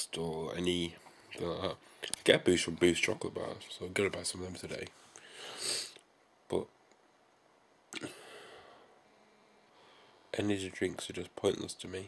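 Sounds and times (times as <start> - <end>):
man talking: 0.0 - 5.0, 6.5 - 6.8, 10.3 - 12.0.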